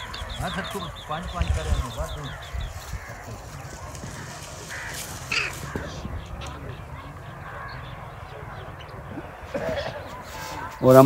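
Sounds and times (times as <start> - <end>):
short bird calls: 0.0 - 11.0.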